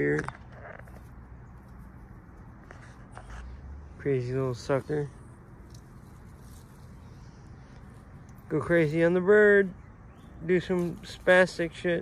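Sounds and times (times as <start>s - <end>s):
soft clicks and rustles: 0.0s - 3.8s, 4.6s - 8.5s.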